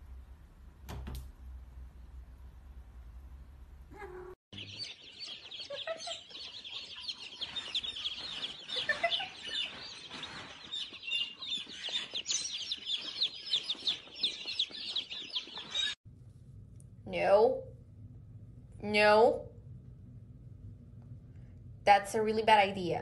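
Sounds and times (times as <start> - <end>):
baby chicks peeping: 4.1 - 16.0.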